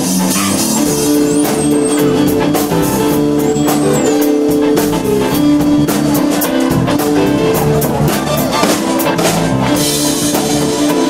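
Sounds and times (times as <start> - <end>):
funk band playing: 0.0 - 11.0.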